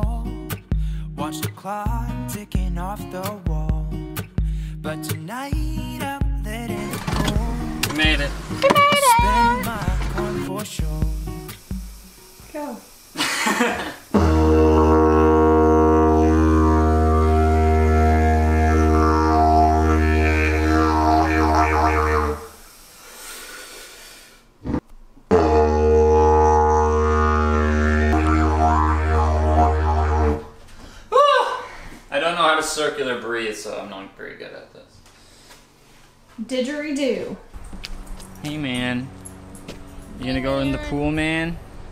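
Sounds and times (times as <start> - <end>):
song with singing: 4.8 - 7.9, 8.7 - 11.3
didgeridoo low drones: 14.1 - 22.5, 24.6 - 30.5.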